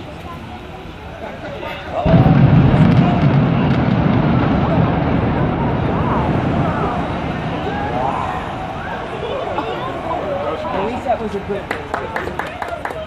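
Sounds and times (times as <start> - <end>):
faint crowd voices: 0.0 - 13.0
deep rumble of building collapsing: 2.0 - 10.7.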